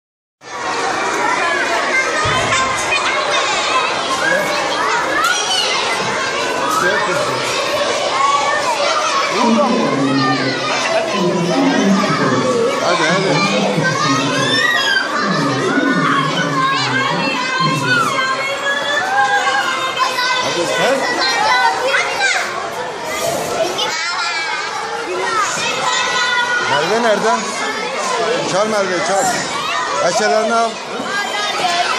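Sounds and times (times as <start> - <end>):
young children talking and calling out: 0.4 - 31.9.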